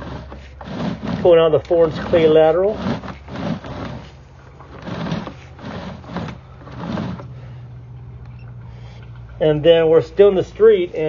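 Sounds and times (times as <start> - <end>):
cable scraping in pipe: 0.0 - 7.6
steady low hum: 0.0 - 11.0.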